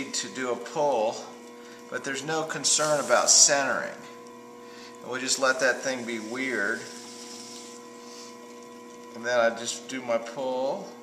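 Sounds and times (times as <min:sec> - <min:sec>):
potter's wheel motor hum: 0:00.0 - 0:11.0.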